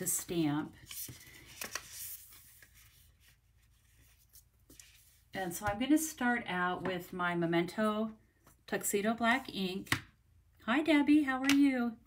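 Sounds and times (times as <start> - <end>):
paper sliding and rustling: 0.8 - 5.3.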